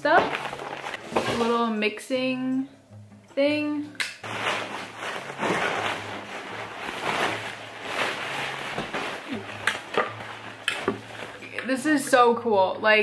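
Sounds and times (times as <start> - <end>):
packaging rustling and scraping: 0.0 - 1.7, 4.2 - 11.6.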